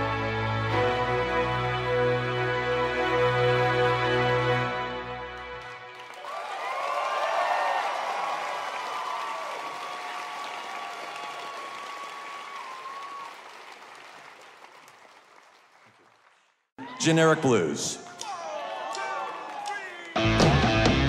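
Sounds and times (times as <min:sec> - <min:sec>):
audience applauding and cheering: 0:05.2 - 0:21.0
whoops and shouts: 0:06.2 - 0:13.4, 0:18.0 - 0:20.2.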